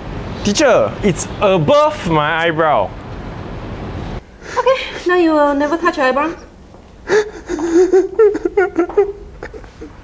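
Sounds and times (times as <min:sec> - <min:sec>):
young man sobbing: 0:07.0 - 0:10.0.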